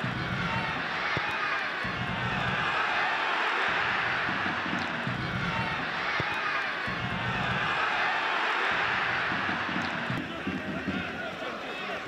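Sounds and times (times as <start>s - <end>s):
stadium crowd voices: 0.0s - 12.0s.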